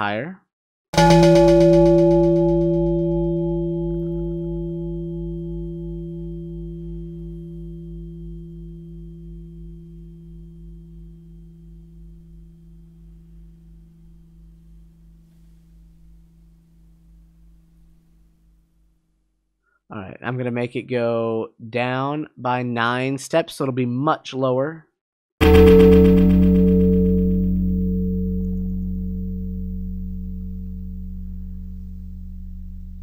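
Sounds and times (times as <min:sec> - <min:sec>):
bell-like ringing tone: 0:01.0 - 0:14.4, 0:25.4 - 0:33.0
low pulsing hum: 0:01.0 - 0:16.5, 0:25.4 - 0:33.0.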